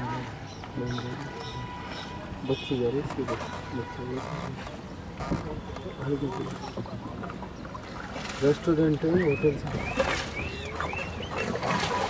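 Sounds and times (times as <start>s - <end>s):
voices: 0.0s - 11.8s
water noise: 0.0s - 12.0s.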